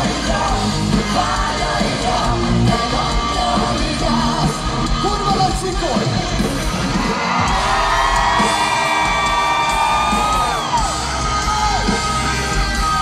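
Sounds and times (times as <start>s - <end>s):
live rock band playing: 0.0s - 13.0s
audience shouting: 6.7s - 13.0s.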